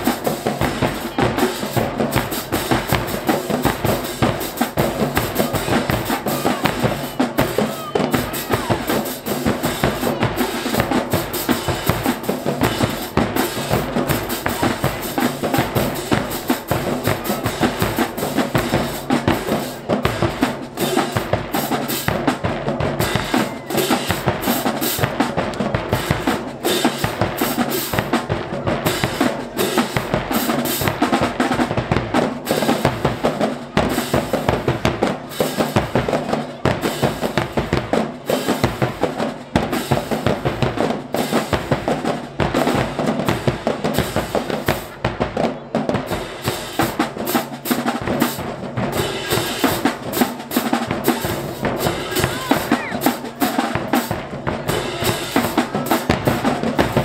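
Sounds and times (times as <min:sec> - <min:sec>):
bass drums: 0:00.0 - 0:35.1, 0:35.7 - 0:57.0
snare drums: 0:00.0 - 0:57.0.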